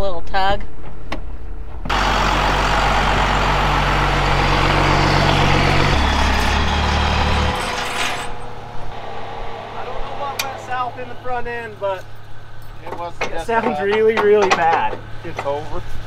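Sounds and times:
truck engine rumbling: 1.9s - 13.9s.

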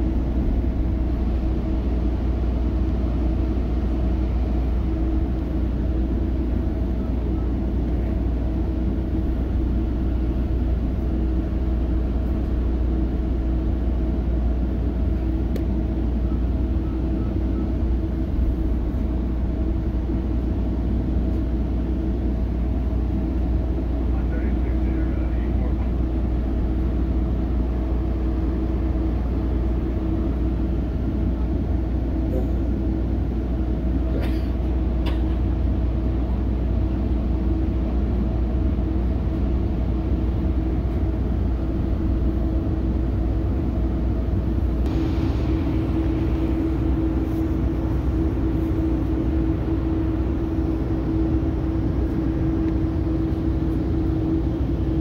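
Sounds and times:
train coach rumble and hum: 0.0s - 55.0s.

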